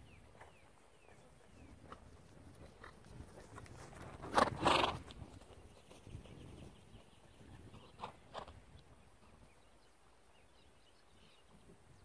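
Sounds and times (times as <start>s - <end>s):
hoofbeats on grass: 0.1s - 8.6s.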